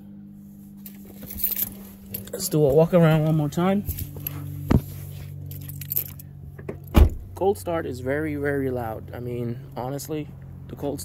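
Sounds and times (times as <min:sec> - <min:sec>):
car engine idling: 0:00.0 - 0:11.0
car door opening click: 0:06.6 - 0:07.3.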